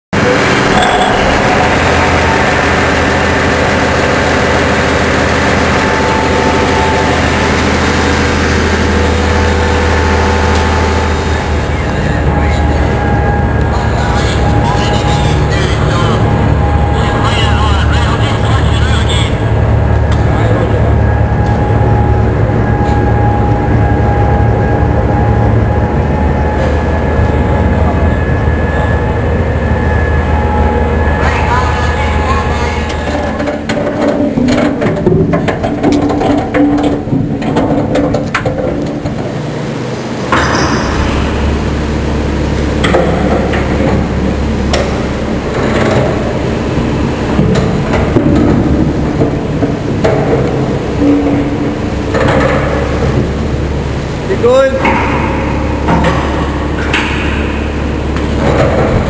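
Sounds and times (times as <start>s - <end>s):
low machinery hum: 0.2s - 59.0s
metal clanks and knocks: 32.9s - 39.6s, 40.3s - 41.7s, 42.8s - 53.4s, 54.8s - 59.0s.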